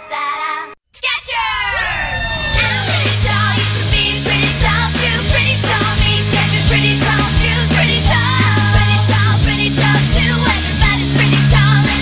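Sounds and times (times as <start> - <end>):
children singing jingle over music: 0.0 - 0.8, 2.6 - 12.0.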